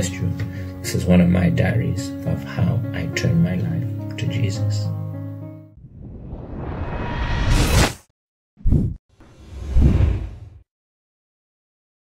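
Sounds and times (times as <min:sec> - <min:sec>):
whoosh: 0:05.8 - 0:08.1, 0:08.7 - 0:10.6.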